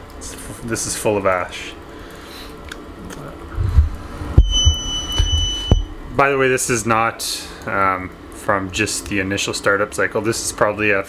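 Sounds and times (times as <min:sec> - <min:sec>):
heavy dull handling bumps: 0:03.6 - 0:06.0
high-pitched electronic beep: 0:04.4 - 0:05.9.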